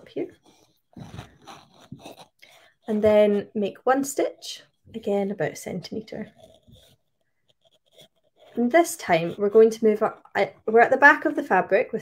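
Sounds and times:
thread rustling through fabric: 0.0 - 3.8, 4.6 - 9.6
person speaking: 0.0 - 6.9, 7.9 - 12.0.

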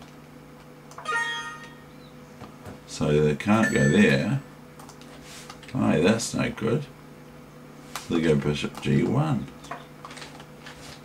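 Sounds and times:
alert chime ding: 1.0 - 1.9, 3.6 - 4.2.

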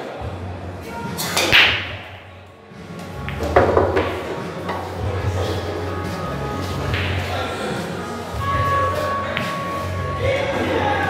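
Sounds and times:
pool balls clattering and rolling: 1.5 - 11.0
cue striking cue ball: 3.2 - 4.9
cue ball smashing into racked balls: 3.3 - 4.5.

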